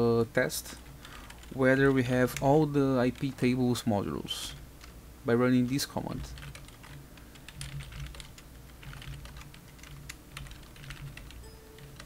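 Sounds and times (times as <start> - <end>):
keyboard typing: 1.0 - 2.5, 6.3 - 12.0.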